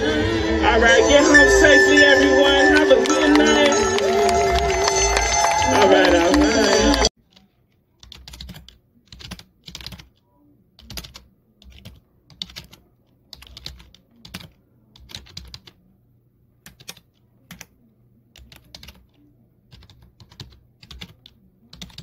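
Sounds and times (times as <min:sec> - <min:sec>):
keyboard typing clicks: 0:07.3 - 0:10.2, 0:16.6 - 0:17.7.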